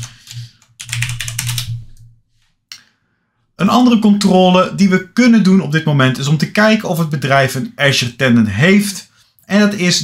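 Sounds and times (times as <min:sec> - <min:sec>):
computer keyboard typing: 0:00.0 - 0:02.0.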